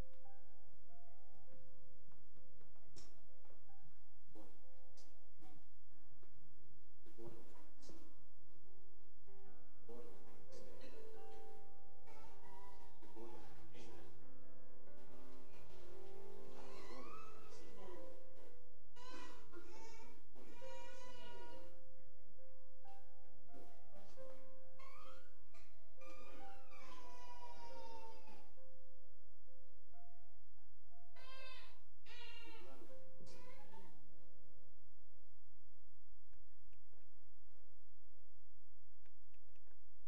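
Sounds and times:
soft instrumental notes: 0:09.2 - 0:28.8
baby crying: 0:12.0 - 0:14.0, 0:16.4 - 0:18.1, 0:19.0 - 0:21.8, 0:24.8 - 0:28.6, 0:31.1 - 0:34.0.

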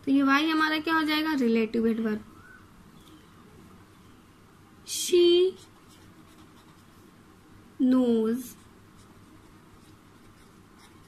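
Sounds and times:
pen scratching on paper: 0:05.5 - 0:06.9, 0:08.5 - 0:11.0.

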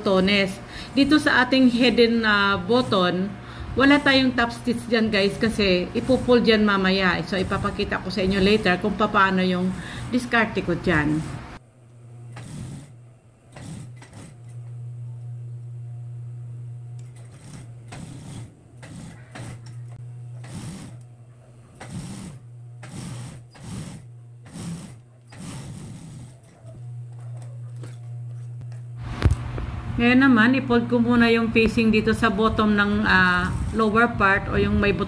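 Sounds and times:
sewing machine motor hum: 0:00.0 - 0:29.9, 0:32.0 - 0:34.3
sewing machine stitching bursts: 0:05.0 - 0:11.4, 0:12.3 - 0:14.6, 0:17.0 - 0:21.0, 0:21.6 - 0:28.0.

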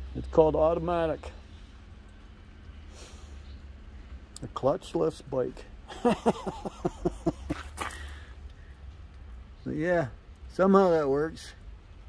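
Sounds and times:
breathy hiss: 0:02.8 - 0:03.6
man laughing: 0:05.8 - 0:08.2.

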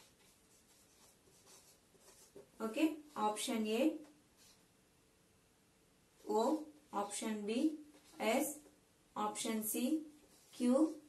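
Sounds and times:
marker pen on whiteboard: 0:00.0 - 0:04.7, 0:06.2 - 0:11.0.

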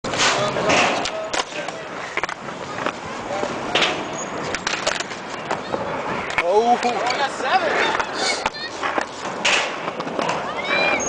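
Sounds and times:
skateboard wheels rolling on concrete: 0:00.0 - 0:11.0
skateboard clacking on ground: 0:00.1 - 0:10.9.

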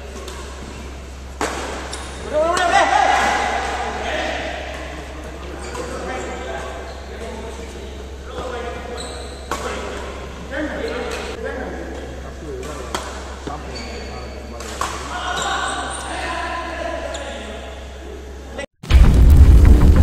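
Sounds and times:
racquets hitting shuttlecock: 0:01.4 - 0:03.7, 0:14.6 - 0:15.6
players calling out: 0:02.0 - 0:07.2
steady low hum: 0:18.2 - 0:20.0.

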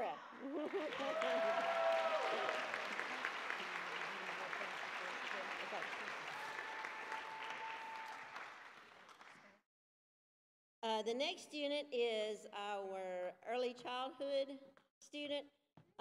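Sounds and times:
people cheering: 0:00.3 - 0:08.8
audience applauding: 0:00.4 - 0:09.6.

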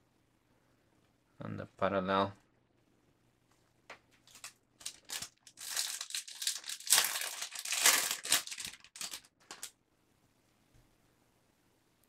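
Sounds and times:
cards rustling: 0:04.1 - 0:09.7
foil wrapper crinkling: 0:04.2 - 0:09.7.

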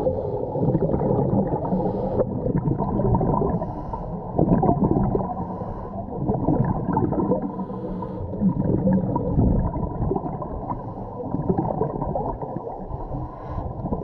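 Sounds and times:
diver breathing through regulator: 0:00.0 - 0:00.8, 0:01.5 - 0:02.6, 0:03.3 - 0:04.5, 0:05.2 - 0:06.3, 0:07.3 - 0:08.6, 0:10.6 - 0:11.6, 0:12.8 - 0:14.0
gurgling exhaled bubbles: 0:00.0 - 0:14.0.

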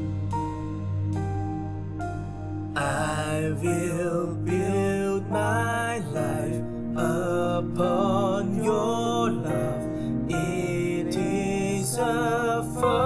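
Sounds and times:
held keyboard chords: 0:00.0 - 0:13.0
person singing with vibrato: 0:02.8 - 0:13.0.

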